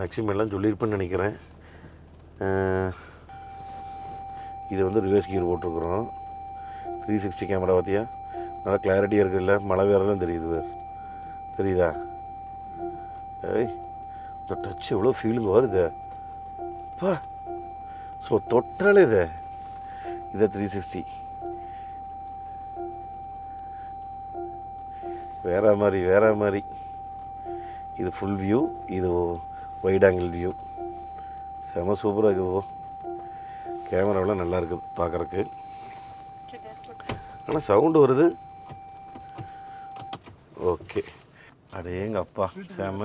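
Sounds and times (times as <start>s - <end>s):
electronic warning tone: 3.3s - 40.2s
short two-pitched beep: 3.3s - 40.2s.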